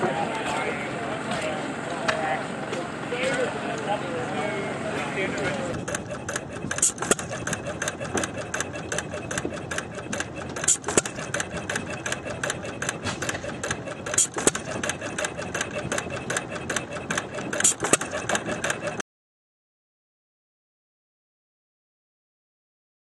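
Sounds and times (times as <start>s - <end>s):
stationary gas engine clattering: 0.0s - 19.0s
engine firing crack: 2.6s - 19.0s.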